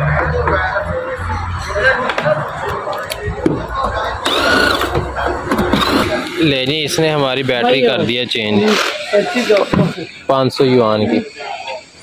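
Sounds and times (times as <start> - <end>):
cordless drill driving screws: 4.2 - 5.0, 5.8 - 6.4, 8.7 - 9.7.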